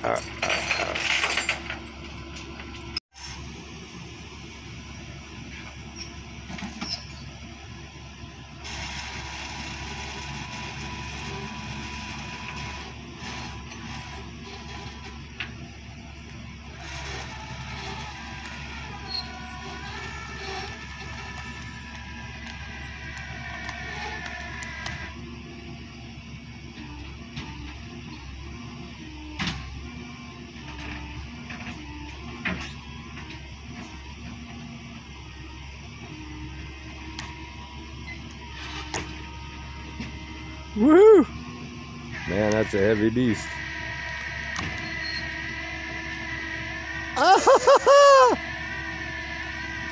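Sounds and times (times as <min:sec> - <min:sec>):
winch and truck engine running: 0:00.0 - 0:49.9.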